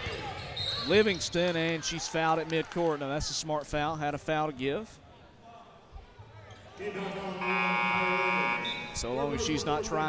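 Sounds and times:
faint crowd and court noise: 0.0 - 10.0
arena horn blast: 6.9 - 9.1.

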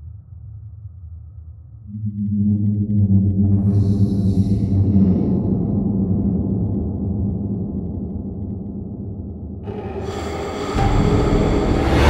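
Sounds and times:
deep low rumble: 1.3 - 12.0
sustained tonal drone: 1.9 - 12.0.

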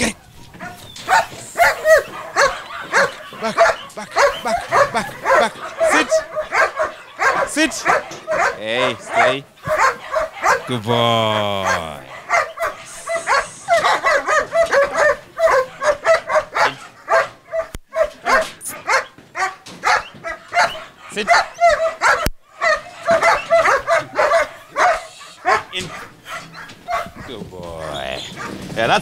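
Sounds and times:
dog yipping and whining: 0.0 - 10.7, 11.7 - 28.6.

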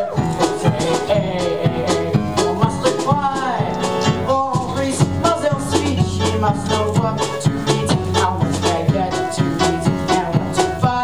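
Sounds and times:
upbeat show-tune music: 0.0 - 11.0.

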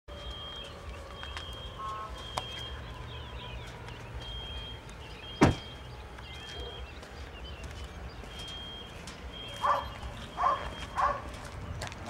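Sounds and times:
loud thump: 5.4 - 5.7.

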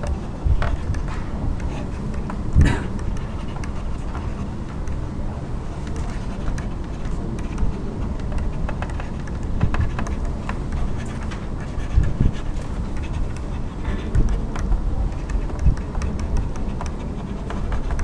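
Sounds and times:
low rumbling background noise: 0.0 - 18.0
light clicks and taps: 5.8 - 18.0.

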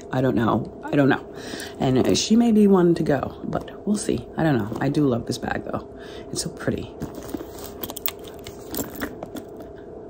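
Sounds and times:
faint steady hum: 0.0 - 10.0
chain links clicking: 7.4 - 9.6.

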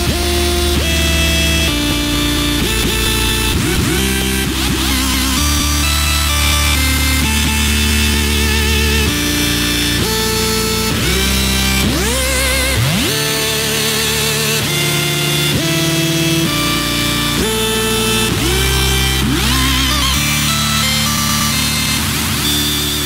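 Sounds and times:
electronic dance music: 0.0 - 23.0.

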